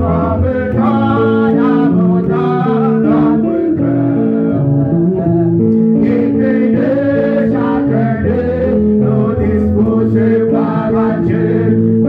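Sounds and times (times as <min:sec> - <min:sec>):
guitar and bass held notes: 0:00.0 - 0:12.0.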